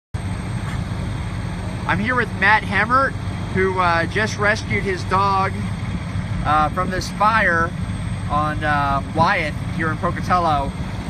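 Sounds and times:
fire engine idling hum: 0.2s - 11.0s.

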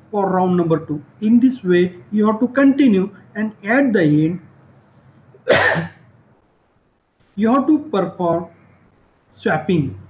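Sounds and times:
person coughing: 5.4s - 6.0s.

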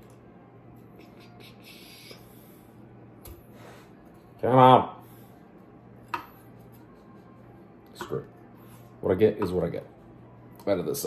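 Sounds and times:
low hum: 0.0s - 10.9s
faint music: 0.0s - 11.0s.

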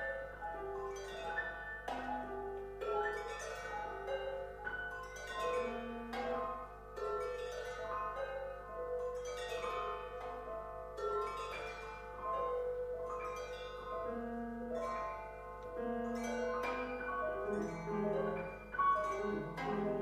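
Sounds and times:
piano and percussion notes ringing: 0.0s - 20.0s.

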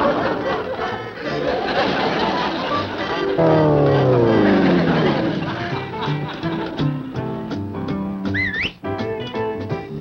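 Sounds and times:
cartoon background music: 3.3s - 10.0s.

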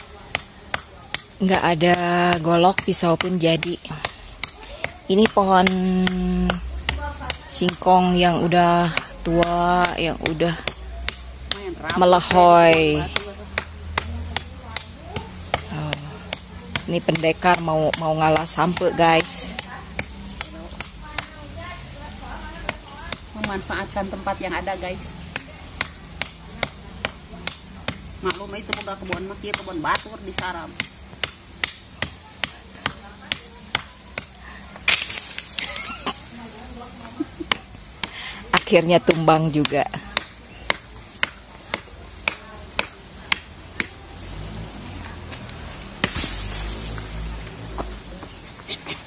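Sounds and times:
knife chopping woody stem: 25.2s - 36.2s, 37.4s - 47.9s
rustling burst: 46.0s - 47.4s.

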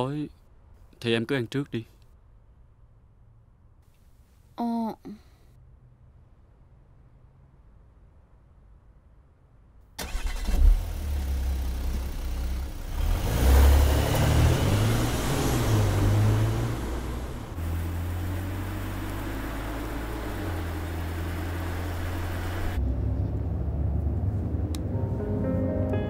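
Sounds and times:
car engine starting and revving: 10.0s - 25.2s.

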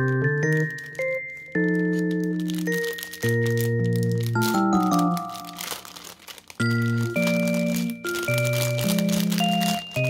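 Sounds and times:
background music: 0.0s - 6.0s, 6.6s - 10.0s
plastic bag crinkling: 0.0s - 10.0s.

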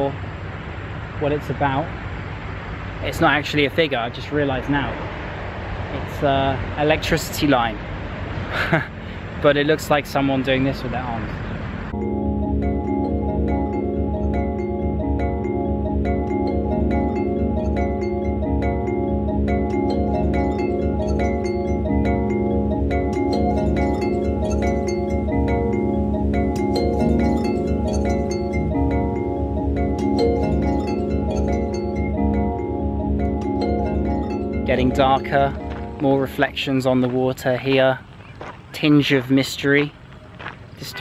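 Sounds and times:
calm chime-like mallet music: 11.9s - 37.4s.

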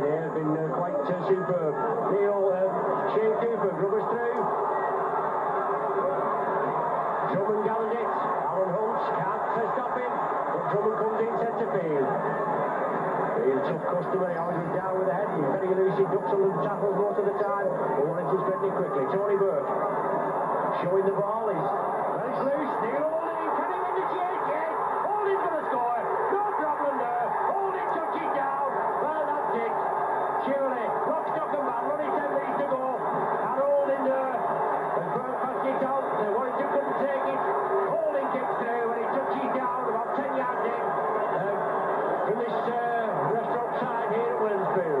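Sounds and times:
crowd cheering and chanting: 0.0s - 45.0s.

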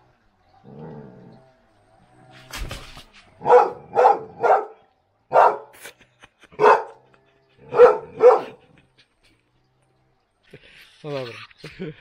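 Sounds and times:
dog barking: 3.4s - 5.7s, 6.6s - 7.0s, 7.7s - 8.6s.

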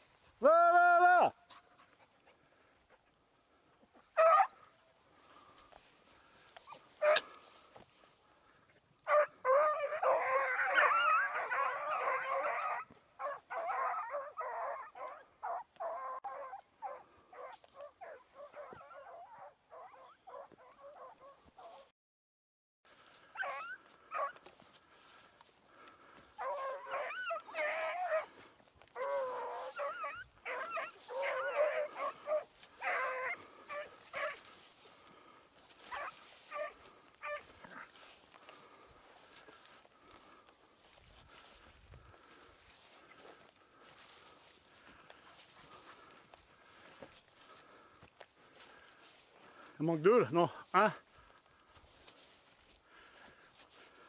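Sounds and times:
dogs barking and yelping: 4.0s - 4.7s, 6.4s - 7.7s, 9.0s - 21.9s, 23.2s - 49.7s.

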